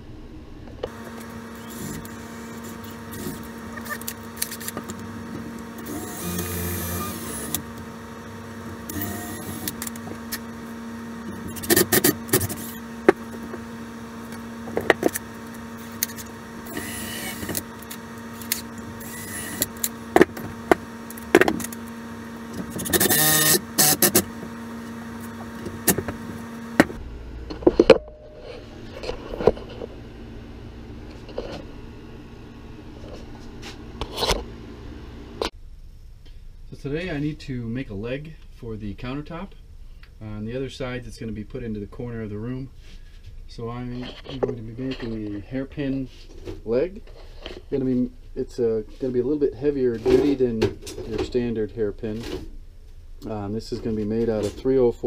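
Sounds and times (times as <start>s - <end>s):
steady hum: 0.0s - 55.0s
cordless drill driving screw: 5.8s - 7.8s, 8.8s - 10.5s, 15.8s - 20.2s, 22.5s - 24.4s.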